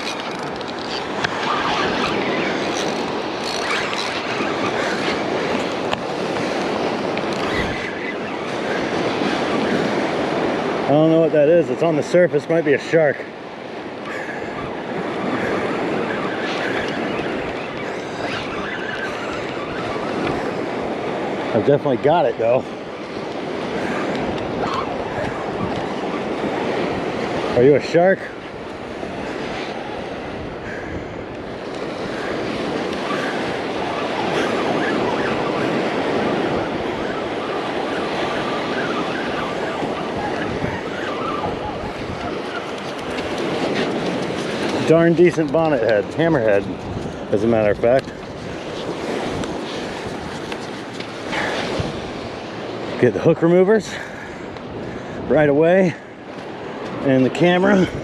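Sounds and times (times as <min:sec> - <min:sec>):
wind on microphone: 0:00.0 - 0:12.0, 0:13.2 - 0:58.0
surf washing: 0:00.0 - 0:58.0
fishing reel cranking: 0:02.0 - 0:04.4.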